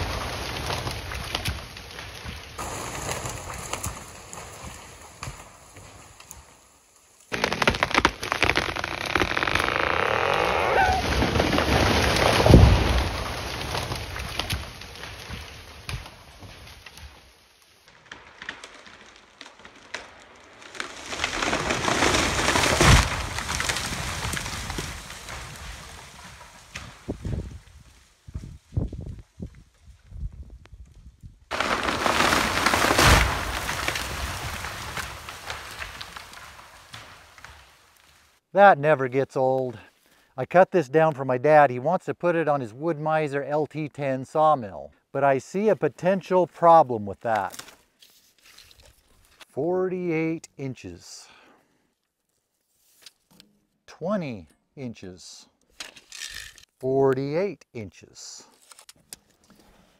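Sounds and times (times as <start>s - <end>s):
tree crashing through branches: 0.0s - 30.1s, 31.4s - 38.4s
falling branches and debris patter: 0.0s - 38.4s, 46.6s - 49.6s.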